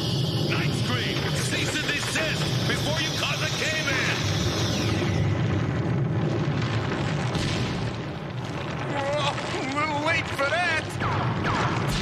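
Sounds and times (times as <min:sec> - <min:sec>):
piercing high screech: 0:00.0 - 0:05.9
heavy low rumble: 0:00.0 - 0:12.0.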